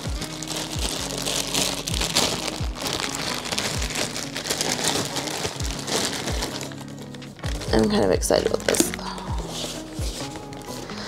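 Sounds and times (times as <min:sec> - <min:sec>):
background music with bass beat: 0:00.0 - 0:11.0
plastic bag crinkling: 0:00.0 - 0:11.0.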